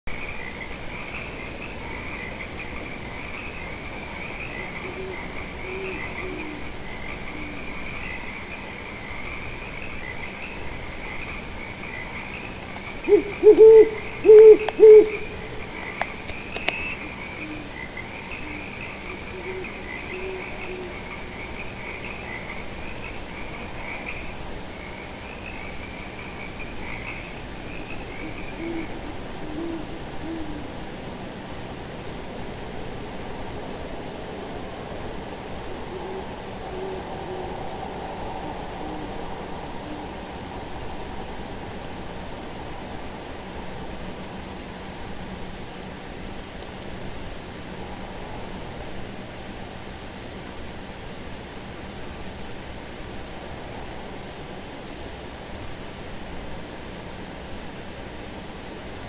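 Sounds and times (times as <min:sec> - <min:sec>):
steady hiss: 0:00.1 - 0:59.0
owls hooting: 0:01.3 - 0:08.4, 0:12.9 - 0:22.6, 0:26.8 - 0:30.8, 0:35.9 - 0:37.6, 0:38.3 - 0:40.2.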